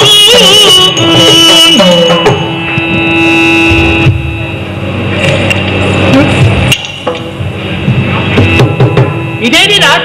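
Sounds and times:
percussion drums rolling: 0.0s - 9.9s
thin steady drone tone: 0.0s - 10.0s.

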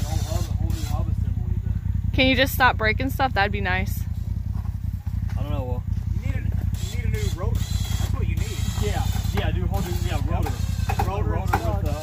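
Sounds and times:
people talking indistinctly: 0.0s - 4.1s, 5.2s - 12.0s
engine running at low revs: 0.0s - 12.0s.

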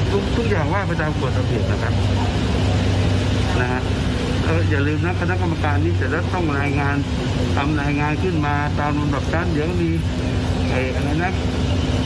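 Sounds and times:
man speaking: 0.0s - 2.2s, 3.5s - 11.5s
low mechanical hum: 0.0s - 12.0s.

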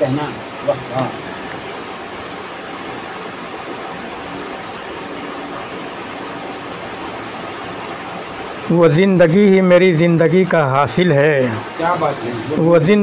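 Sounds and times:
room noise hiss: 0.0s - 13.0s.

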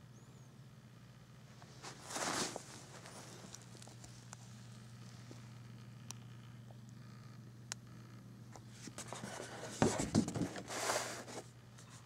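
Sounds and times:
paper rustling and sliding: 1.7s - 3.8s, 8.7s - 11.5s
soft bumps on table: 9.8s - 10.6s.

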